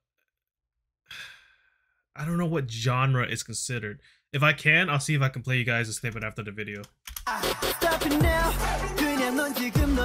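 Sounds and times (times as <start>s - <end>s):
man sighing: 1.1s - 1.8s.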